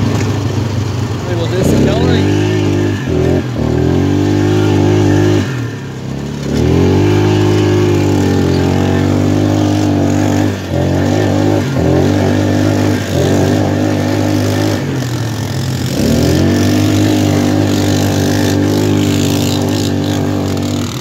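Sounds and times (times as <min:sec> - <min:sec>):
atv engine revving: 0:00.0 - 0:21.0.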